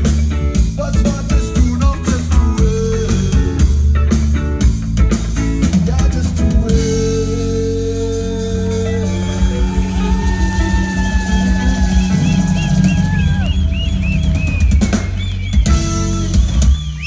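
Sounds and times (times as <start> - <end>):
live band playing: 0.0 - 17.0.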